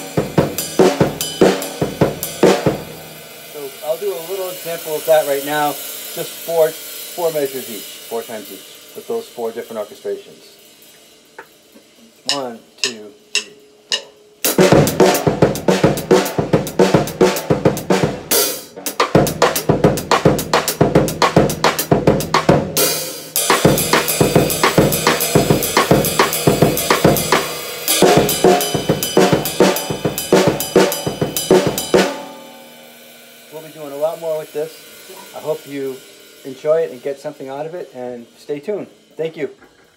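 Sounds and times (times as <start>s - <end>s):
cymbal wash: 0.0s - 39.6s
drum kit funk groove: 0.0s - 39.9s.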